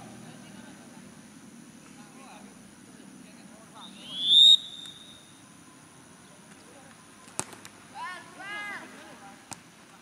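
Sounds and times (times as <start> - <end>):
referee's whistle blast: 3.8 - 5.3.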